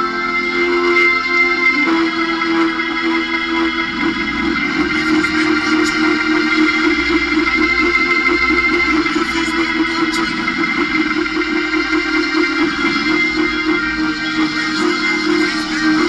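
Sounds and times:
organ playing held chords: 0:00.0 - 0:16.0.

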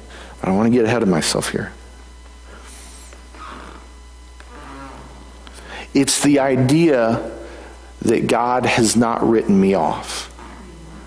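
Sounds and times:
electrical mains hum: 0:00.0 - 0:11.0
faint breath: 0:05.5 - 0:05.9, 0:07.4 - 0:08.0.

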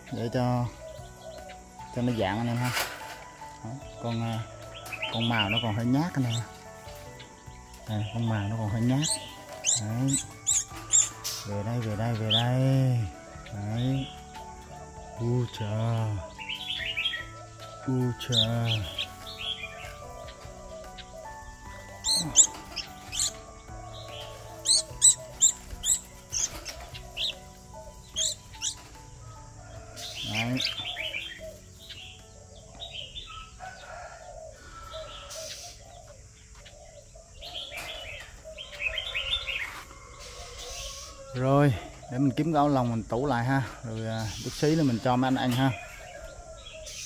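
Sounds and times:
birds chirping: 0:00.0 - 0:47.0
soft bird calling: 0:00.0 - 0:47.0.

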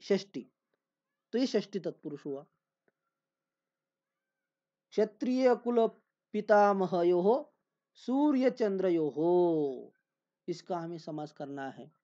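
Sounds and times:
man speaking: 0:00.0 - 0:00.4, 0:01.4 - 0:02.4, 0:05.0 - 0:07.4, 0:08.0 - 0:09.9, 0:10.5 - 0:11.9.

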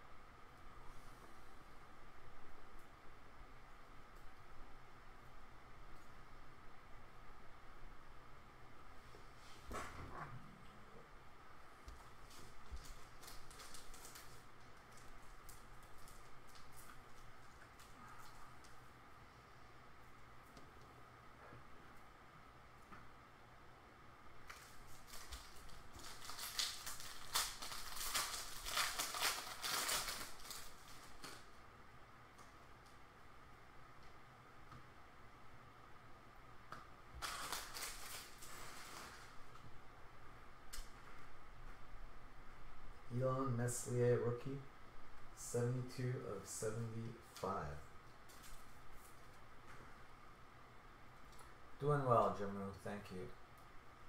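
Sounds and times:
trading cards crinkling: 0:12.1 - 0:18.8, 0:24.4 - 0:31.5, 0:37.2 - 0:39.4.

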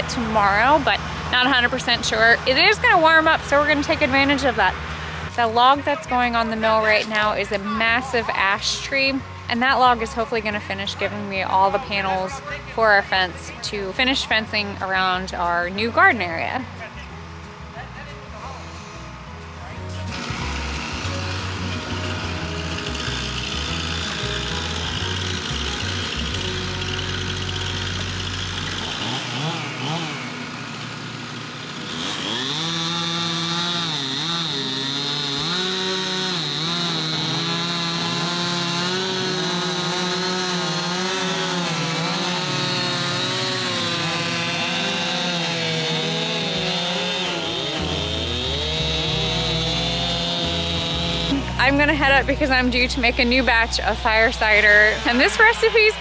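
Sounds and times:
chainsaw cutting wood: 0:00.0 - 0:12.1, 0:19.9 - 0:56.0
low engine rumble: 0:00.0 - 0:32.0, 0:36.5 - 0:56.0.

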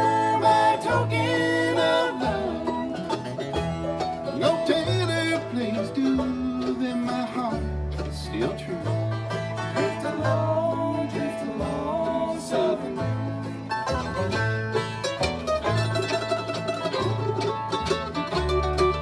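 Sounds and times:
acoustic guitar: 0:00.0 - 0:19.0
banjo: 0:00.0 - 0:19.0
fiddle melody with sliding notes: 0:00.0 - 0:19.0
upright bass: 0:00.0 - 0:19.0.

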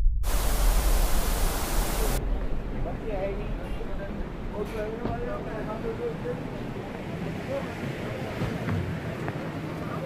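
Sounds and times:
deep low rumble: 0:00.0 - 0:04.6
hissing static burst: 0:00.2 - 0:02.2.

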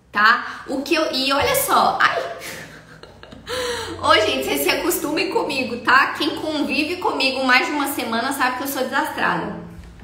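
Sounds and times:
woman breathing: 0:03.4 - 0:04.0.

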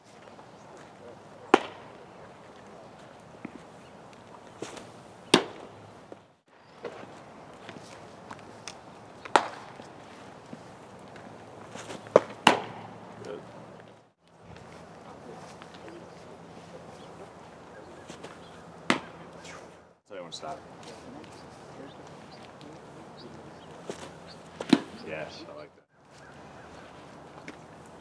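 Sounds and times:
baseball popping into glove: 0:00.8 - 0:02.0, 0:04.6 - 0:05.8, 0:06.8 - 0:13.0, 0:18.0 - 0:19.7, 0:23.7 - 0:25.0
faint scuffing: 0:02.9 - 0:05.0, 0:06.1 - 0:08.8, 0:09.6 - 0:12.4, 0:13.5 - 0:19.8, 0:23.6 - 0:25.1.

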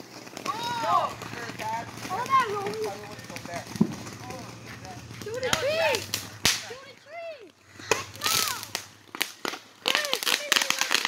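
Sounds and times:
firework sharp cracks: 0:00.0 - 0:07.0, 0:07.8 - 0:11.0
firework whistling: 0:00.0 - 0:11.0.

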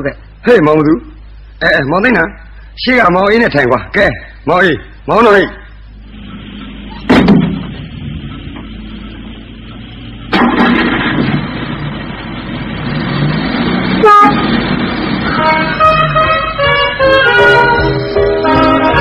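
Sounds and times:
vehicle running noise: 0:00.0 - 0:19.0
heavy thud: 0:07.0 - 0:08.8
short horn blast: 0:14.0 - 0:14.6, 0:15.2 - 0:19.0.

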